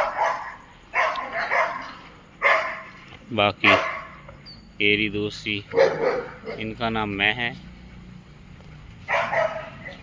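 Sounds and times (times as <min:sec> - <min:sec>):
dogs barking: 0:00.0 - 0:04.4, 0:05.6 - 0:06.9, 0:09.0 - 0:10.0.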